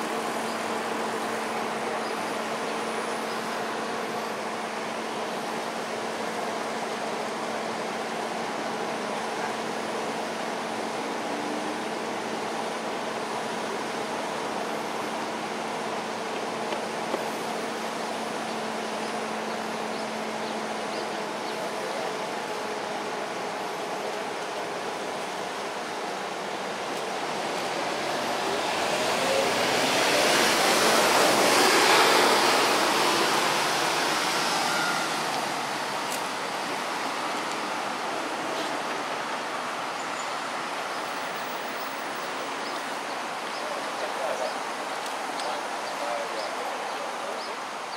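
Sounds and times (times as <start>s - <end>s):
distant traffic: 0.0s - 47.9s.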